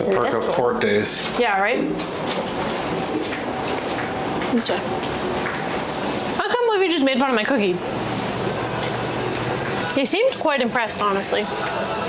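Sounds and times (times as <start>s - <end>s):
elevator mechanical rumble: 0.0s - 12.0s.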